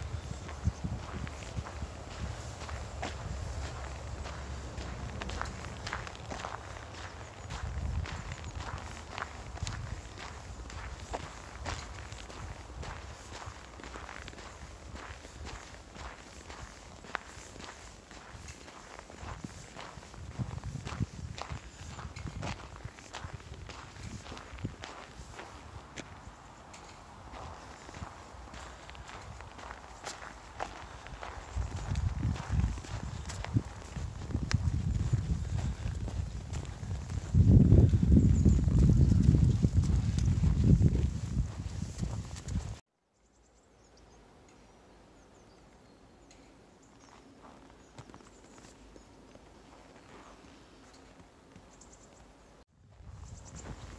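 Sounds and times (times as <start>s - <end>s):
footsteps on snow: 0.0s - 42.8s, 46.9s - 53.9s.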